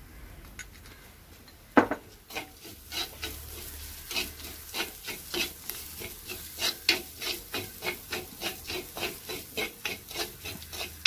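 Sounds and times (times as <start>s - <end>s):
metal spoon scraping clay pot: 2.3s - 11.0s.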